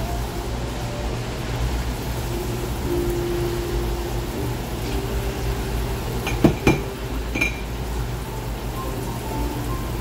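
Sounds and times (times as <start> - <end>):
tap water spraying into sink: 2.0 - 10.0
mug rinsed under water: 4.2 - 8.0.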